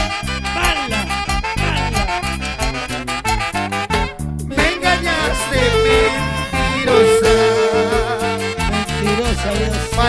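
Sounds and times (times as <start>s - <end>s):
latin dance orchestra: 0.0s - 10.0s
horn section held note: 5.1s - 10.0s.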